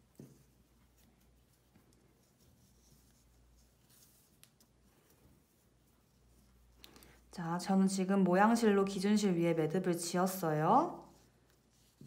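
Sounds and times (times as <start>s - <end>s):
cord rustling through knot: 0.0s - 8.0s, 9.8s - 12.0s.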